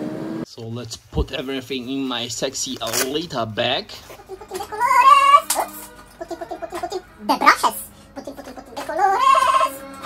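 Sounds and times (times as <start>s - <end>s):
cat meowing: 4.5s - 7.0s, 7.6s - 10.0s.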